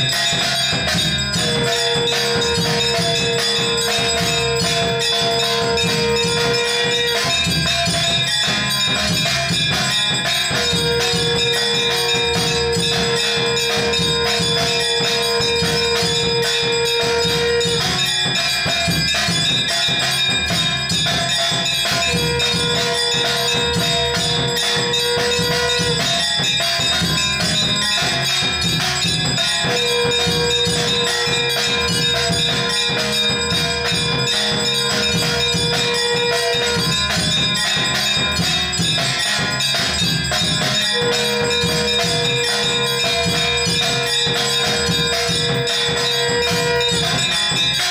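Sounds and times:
clashing percussion: 0.0 - 47.9
drumming: 0.0 - 47.9
long steady held note: 0.0 - 47.9
temple bells ringing fast: 0.0 - 47.9.

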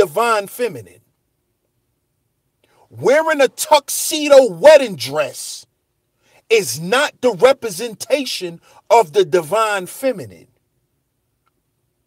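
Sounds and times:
man talking: 0.0 - 1.0, 2.9 - 5.7, 6.5 - 10.4
faint steady hiss: 0.0 - 12.0
man's intake of breath: 8.6 - 8.9.

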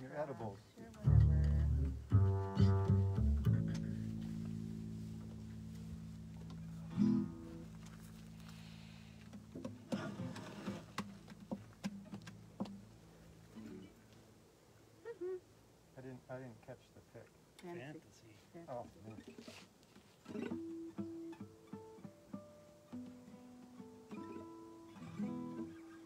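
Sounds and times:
double bass plucked: 0.8 - 10.0
acoustic guitar plucks: 0.8 - 12.9, 20.2 - 26.0.

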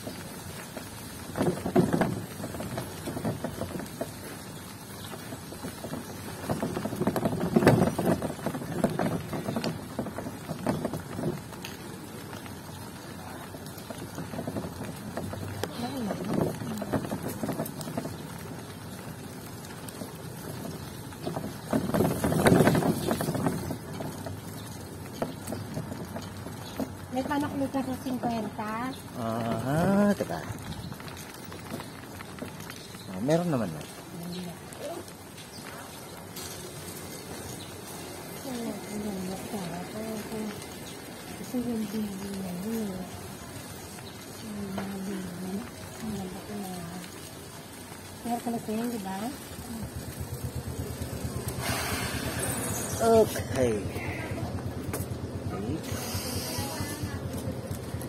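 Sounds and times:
road noise on wet concrete: 0.0 - 58.0
motorcycle engine running: 0.1 - 58.0.

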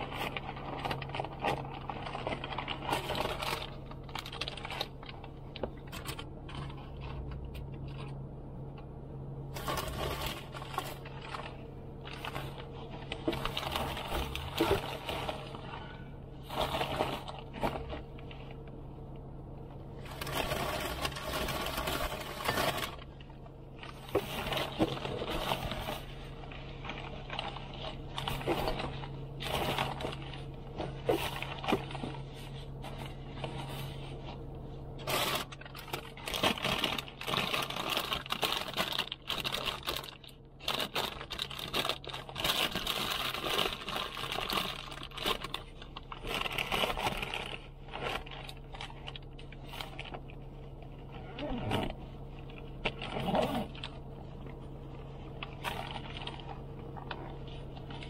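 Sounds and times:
food bags rustling and crinkling: 0.0 - 8.2, 9.4 - 18.8, 19.8 - 58.0
steady low hum: 0.0 - 58.0.

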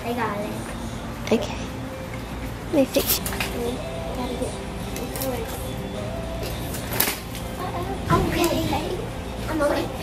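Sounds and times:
low hum of shop ambience: 0.0 - 10.0.

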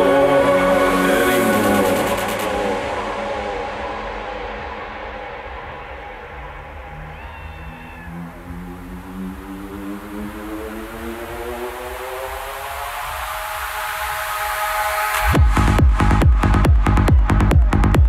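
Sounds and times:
synth tone rising in pitch: 0.0 - 17.7
muffled psytrance music: 0.0 - 18.0.

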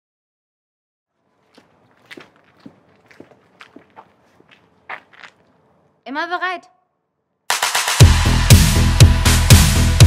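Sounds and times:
sharp footsteps: 1.2 - 5.9.

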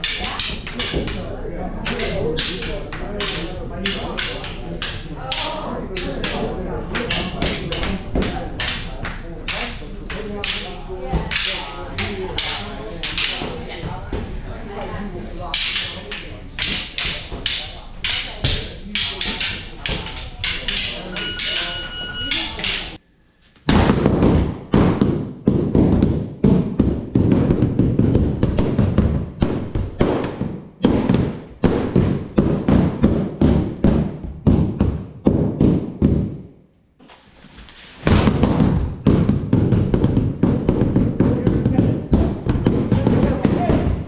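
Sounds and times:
sticks clacking together: 0.0 - 1.2, 1.8 - 13.6, 15.5 - 23.0
murmur of voices: 0.0 - 23.0.

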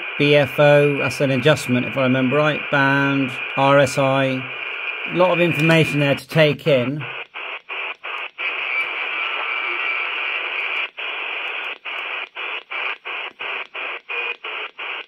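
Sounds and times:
radio receiver hiss: 0.0 - 15.0.

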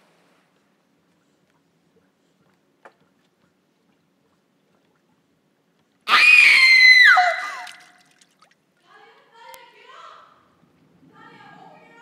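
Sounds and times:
person screaming: 6.1 - 7.8.

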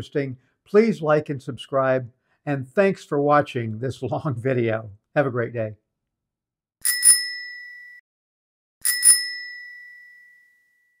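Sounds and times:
bicycle bell ringing: 6.8 - 8.0, 8.8 - 11.0.

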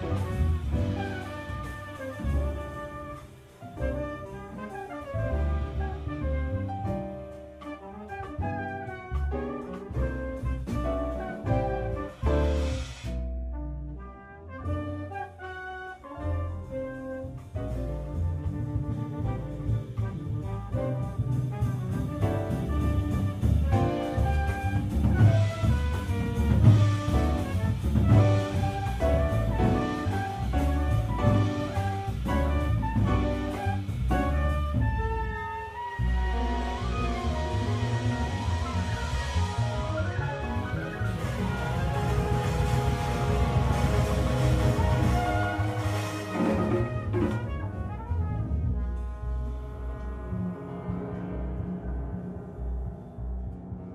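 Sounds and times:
drum kit: 0.0 - 51.2
trumpet: 0.0 - 52.2
double bass: 0.0 - 53.9
saxophone: 19.2 - 51.8
horn sustained notes: 25.3 - 52.0.

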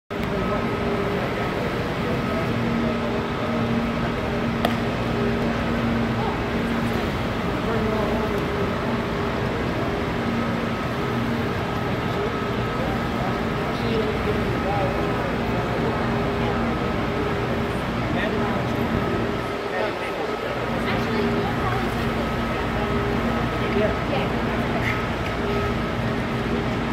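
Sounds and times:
hum and rush of aquarium hall: 0.1 - 26.9.

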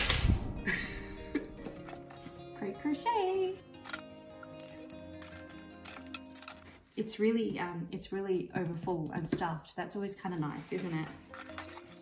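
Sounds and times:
plastic packaging rustling: 10.6 - 12.0.

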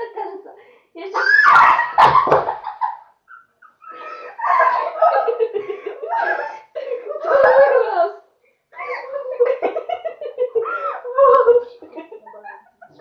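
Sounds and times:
girls squealing and laughing: 1.1 - 12.9
bodies landing thud: 2.0 - 2.7.

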